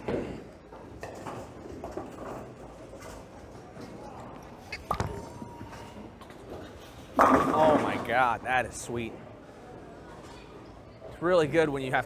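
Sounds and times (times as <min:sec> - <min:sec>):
bowling alley background: 0:00.0 - 0:12.0.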